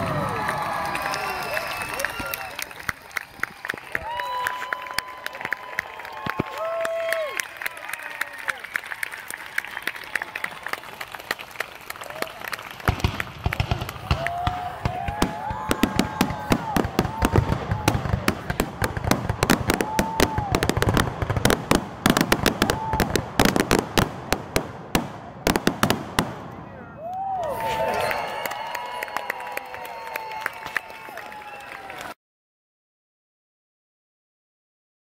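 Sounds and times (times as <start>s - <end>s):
whoops and cheers: 0.0s - 10.9s, 12.0s - 12.6s, 13.6s - 18.2s, 19.5s - 20.8s, 22.6s - 23.2s, 26.8s - 32.2s
audience applauding: 0.0s - 21.4s, 27.0s - 32.2s.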